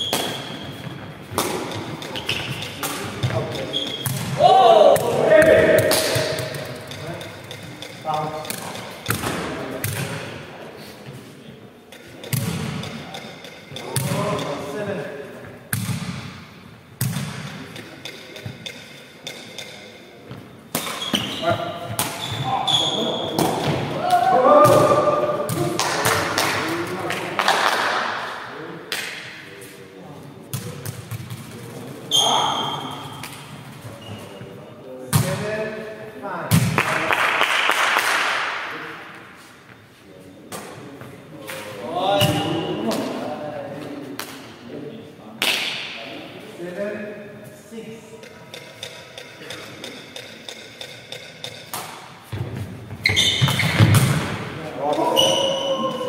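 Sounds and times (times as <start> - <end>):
ball thuds in a hall: 0.0 - 10.4, 15.7 - 26.7, 35.1 - 35.6, 36.5 - 37.0, 48.2 - 56.0
players shouting: 4.3 - 6.2.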